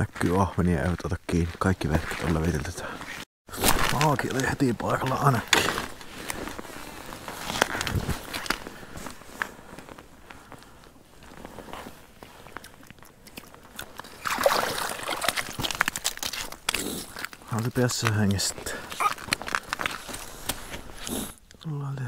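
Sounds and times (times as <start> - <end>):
crunching and rustling on snowy ice: 0.0 - 21.4
fish landing on snowy ice: 14.0 - 18.4.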